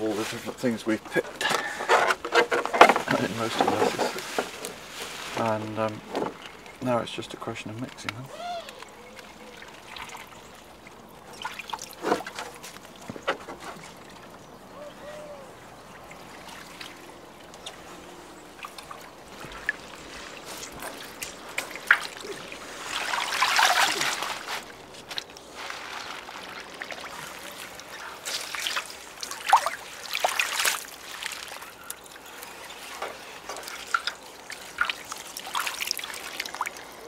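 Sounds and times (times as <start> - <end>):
rush of water: 0.0 - 37.0
water splashing and trickling: 0.0 - 37.0.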